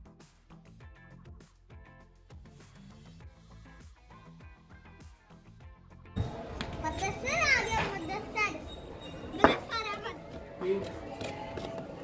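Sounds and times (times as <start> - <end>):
children playing and calling out: 6.5 - 10.6.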